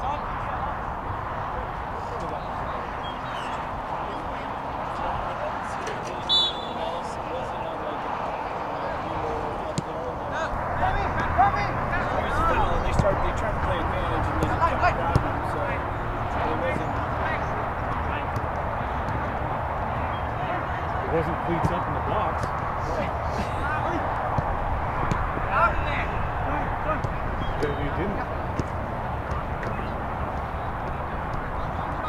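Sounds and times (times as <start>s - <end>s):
murmur of spectators' voices: 0.0s - 32.0s
referee's whistle blast: 6.3s - 6.8s
ball being kicked: 24.3s - 25.4s, 28.5s - 31.8s.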